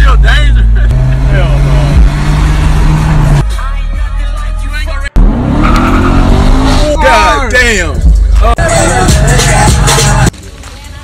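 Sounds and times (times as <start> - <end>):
car engine revving up: 0.0 - 3.4, 5.1 - 7.3
bass-heavy music: 0.0 - 11.0
engine and road rumble: 0.0 - 11.0.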